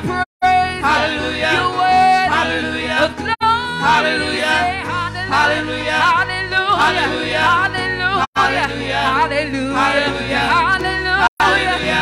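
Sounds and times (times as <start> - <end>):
gospel singers through microphones: 0.0 - 12.0.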